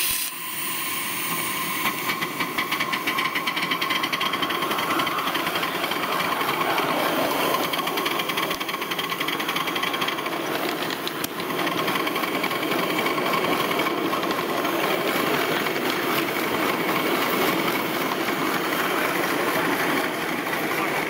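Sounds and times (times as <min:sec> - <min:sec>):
miniature steam locomotive running: 0:00.0 - 0:21.0
wheels on rails: 0:00.8 - 0:21.0.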